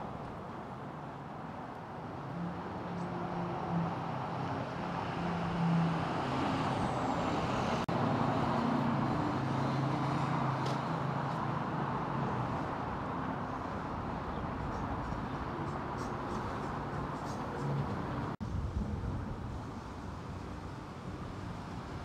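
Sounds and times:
road noise: 0.0s - 22.0s
vehicle engine humming: 0.0s - 22.0s.

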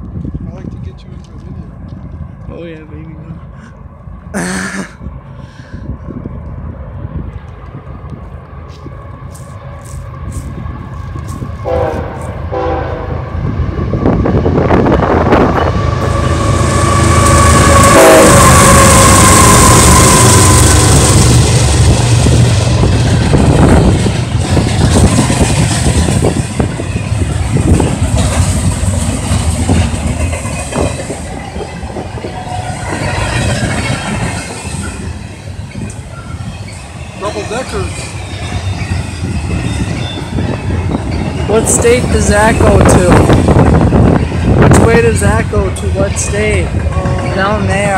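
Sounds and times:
diesel locomotive engine rumble: 0.0s - 47.9s
train horn: 11.6s - 13.3s, 16.0s - 21.0s
train wheels clattering on rails: 14.6s - 47.9s.

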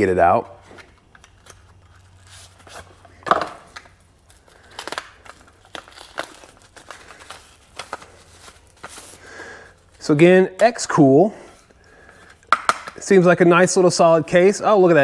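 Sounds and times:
plastic bag crinkling: 1.0s - 10.2s.

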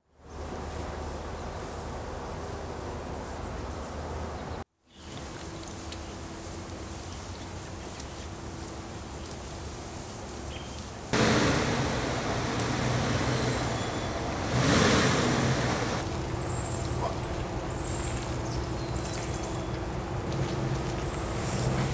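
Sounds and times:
pickup truck engine running: 11.2s - 18.8s.

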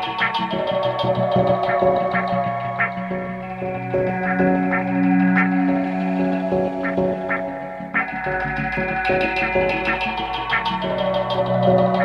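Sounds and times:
ambient electronic music: 0.0s - 12.0s.

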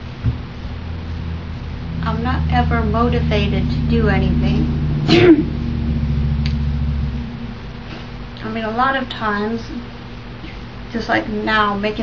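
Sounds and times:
low background rumble and hum: 0.0s - 12.0s.

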